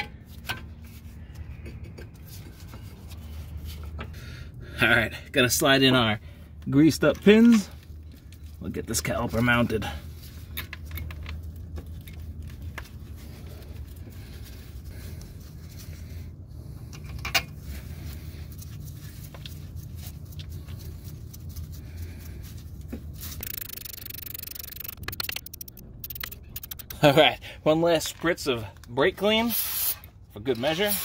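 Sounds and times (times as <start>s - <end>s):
steady low hum: 9.8s - 27.8s
metal scrapes and clicks: 23.4s - 27.1s.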